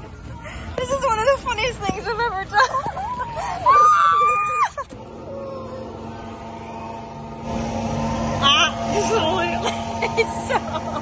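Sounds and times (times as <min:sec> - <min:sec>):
boat motor humming: 0:00.0 - 0:11.0
loud rushing noise: 0:05.0 - 0:11.0.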